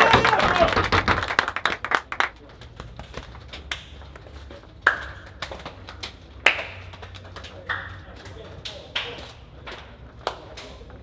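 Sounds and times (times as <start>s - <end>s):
hands clapping: 0.0s - 11.0s.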